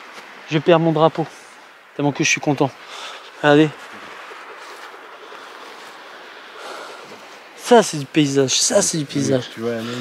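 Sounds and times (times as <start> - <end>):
outdoor hiss: 0.0 - 10.0.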